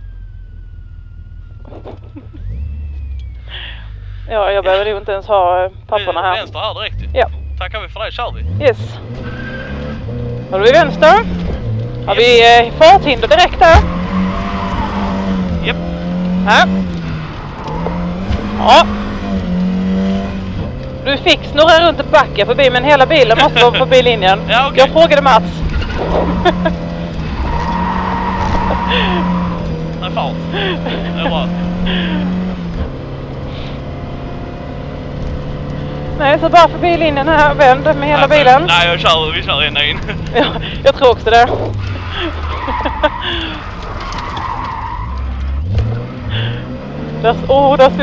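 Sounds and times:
rally car engine under load: 0:00.0 - 0:48.0.

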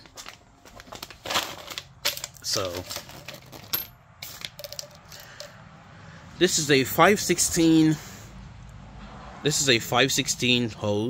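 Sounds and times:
plastic fuel line rattling: 0:00.0 - 0:05.5.

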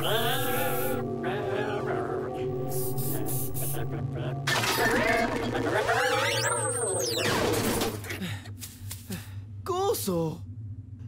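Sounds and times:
cartoon whoosh with warbling whine: 0:04.5 - 0:07.8.

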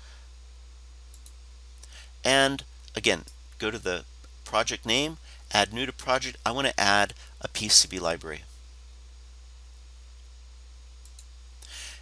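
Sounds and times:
computer mouse clicks: 0:01.1 - 0:01.4, 0:11.0 - 0:11.3.

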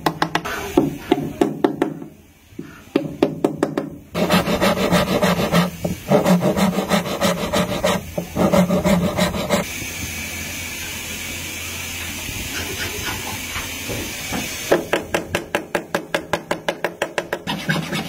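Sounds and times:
rubbing strokes on wooden guitar: 0:04.2 - 0:09.6.

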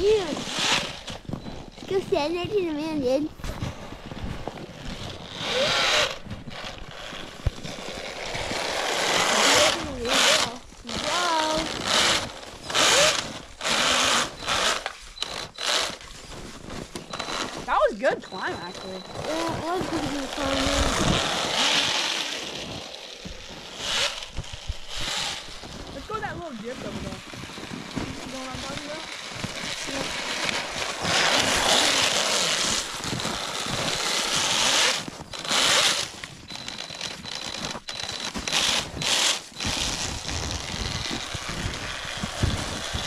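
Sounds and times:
electric motor whining and revving: 0:00.0 - 0:02.1, 0:03.5 - 0:43.0.

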